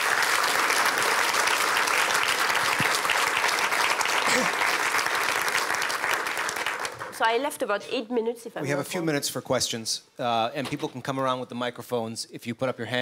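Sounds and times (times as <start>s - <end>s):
large audience applauding: 0.0s - 7.3s.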